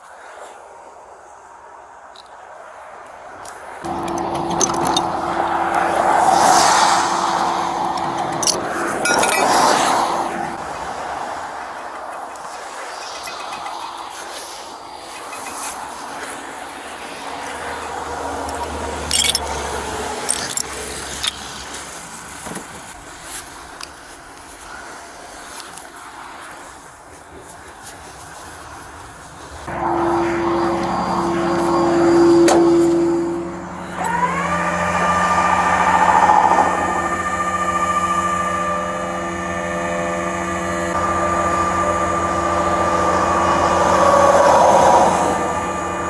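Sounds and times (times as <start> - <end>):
vehicle passing: 3.6 - 23.0, 29.6 - 46.0
hydraulic winch whining: 3.8 - 10.6, 15.1 - 22.5, 29.7 - 46.0
chain and hook clinking on steel: 3.9 - 6.1, 6.8 - 9.9, 18.5 - 21.8
metal bar chipping ice: 19.0 - 19.5, 20.2 - 21.5
low steady hum: 29.7 - 46.0.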